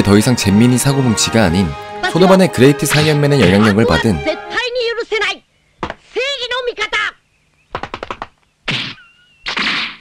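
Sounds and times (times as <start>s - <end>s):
sharp clicks: 7.6s - 8.5s.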